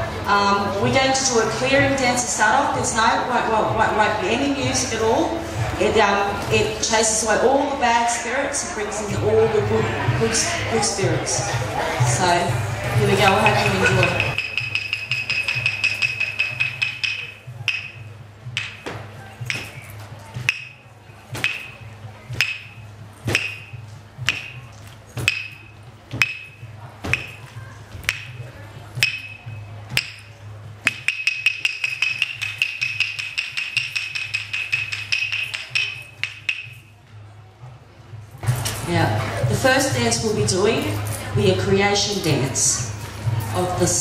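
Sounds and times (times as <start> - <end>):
wooden clapsticks striking: 13.2 - 18.0, 18.6 - 20.8, 21.4 - 21.8, 22.4 - 28.4, 29.0 - 36.9.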